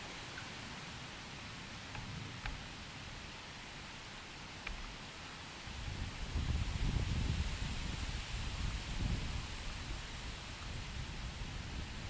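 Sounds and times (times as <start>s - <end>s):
outdoor hiss: 0.0s - 12.0s
wind buffeting microphone: 5.7s - 12.0s.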